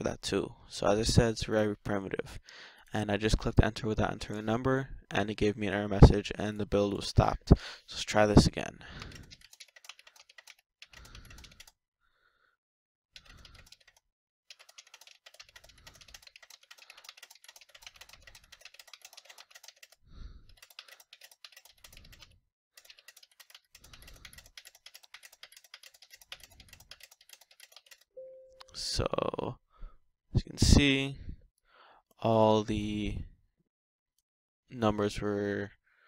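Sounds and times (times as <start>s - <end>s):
typing on computer keyboard: 9.0s - 11.8s, 13.2s - 28.2s.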